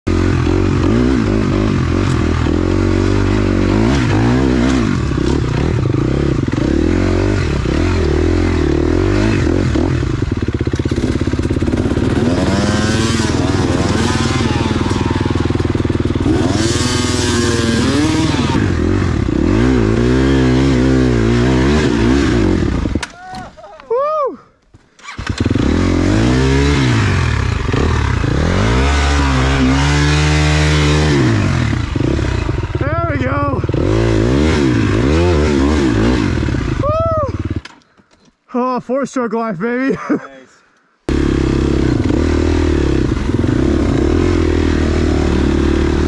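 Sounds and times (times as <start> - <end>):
dirt bike engine revving: 0.1 - 23.0, 25.0 - 37.7, 41.1 - 46.0.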